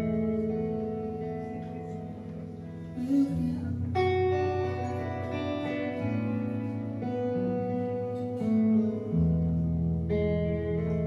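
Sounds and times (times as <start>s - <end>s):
electric guitar playing slowly: 0.0s - 11.0s.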